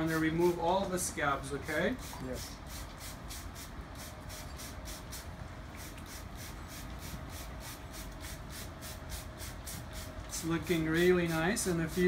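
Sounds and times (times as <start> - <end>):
spray bottle hissing: 2.0 - 10.4.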